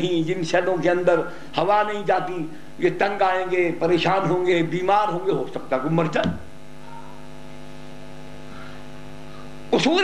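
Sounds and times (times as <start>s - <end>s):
man speaking: 0.0s - 6.5s, 9.7s - 10.0s
electrical mains hum: 0.0s - 10.0s.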